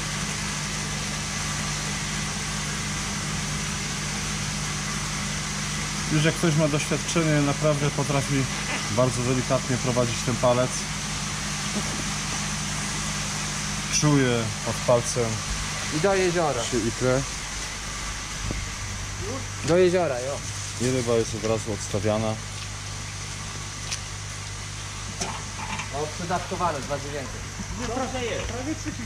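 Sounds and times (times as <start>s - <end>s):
machinery humming: 0.0s - 29.0s
even hiss: 5.9s - 22.5s
aerated water bubbling: 15.4s - 20.8s.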